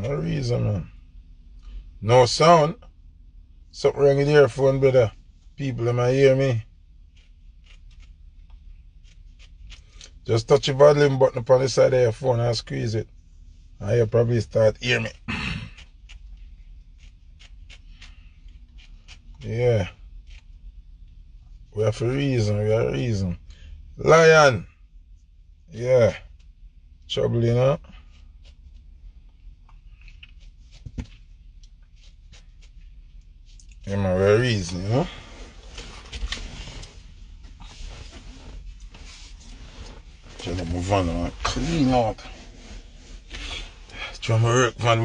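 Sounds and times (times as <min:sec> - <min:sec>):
low rumble inside car: 0:00.0 - 0:45.0.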